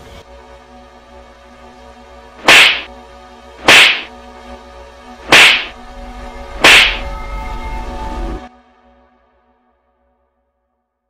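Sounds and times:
background music: 0.0s - 10.9s
slap sound effects: 2.4s - 2.9s, 3.6s - 4.1s, 5.3s - 5.8s, 6.6s - 7.1s.

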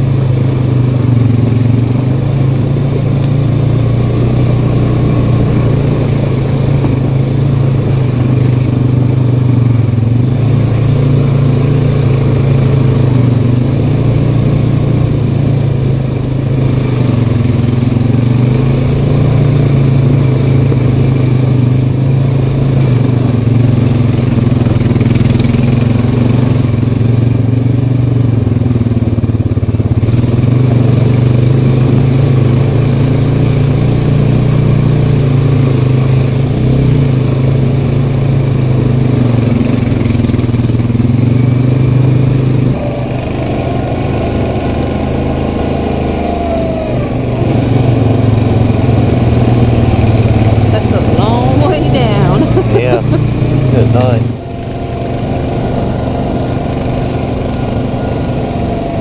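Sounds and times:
atv engine running: 0.0s - 59.0s.

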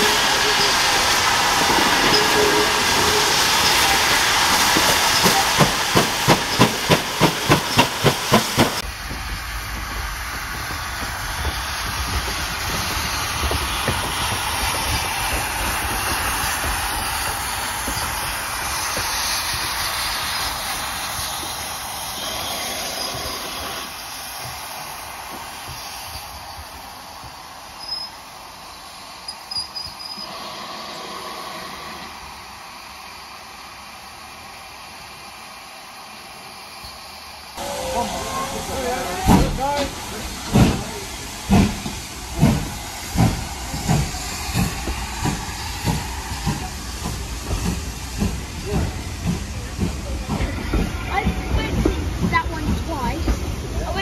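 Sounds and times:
steam hissing: 0.0s - 54.0s
steam engine exhaust beats: 37.6s - 54.0s.

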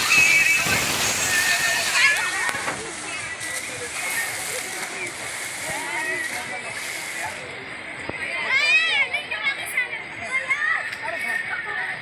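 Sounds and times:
water rushing and splashing: 0.0s - 12.0s
children shrieking and shouting: 8.3s - 12.0s.

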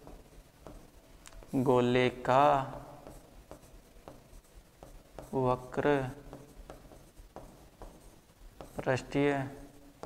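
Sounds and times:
pen tapping and scratching on screen: 0.0s - 1.6s, 2.4s - 10.0s.

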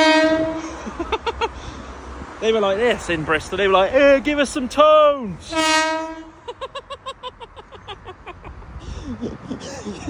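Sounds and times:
train horn blast: 0.0s - 0.8s, 5.4s - 6.4s.

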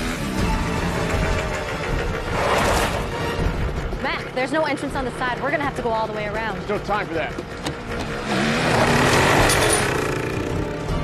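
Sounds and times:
dirt bike engine running: 0.0s - 11.0s
music playing: 0.0s - 11.0s.

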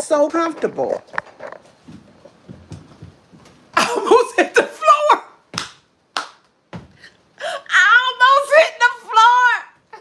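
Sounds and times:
woman laughing: 3.8s - 5.3s.

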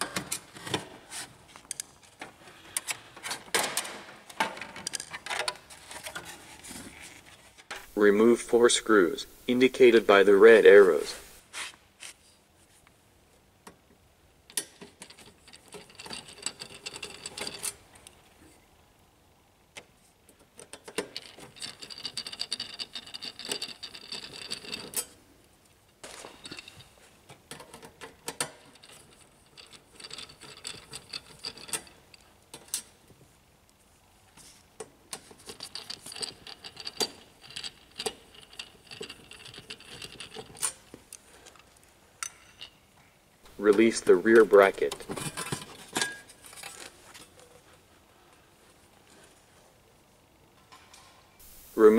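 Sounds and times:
screwdriver scraping and clicking screws: 35.1s - 42.7s.

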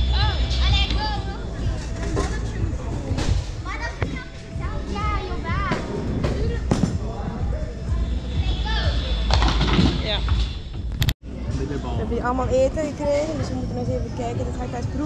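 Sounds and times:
voices: 0.0s - 10.4s
background music: 0.0s - 15.0s.

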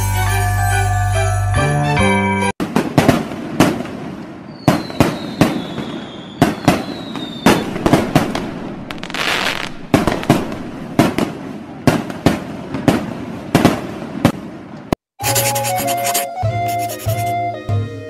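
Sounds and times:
firecrackers banging: 2.6s - 14.5s
falling firework whistle: 4.5s - 10.6s.

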